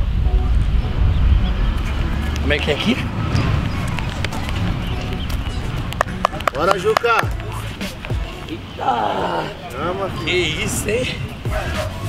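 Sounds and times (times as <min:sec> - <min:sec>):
steady low rumble: 0:00.0 - 0:08.8.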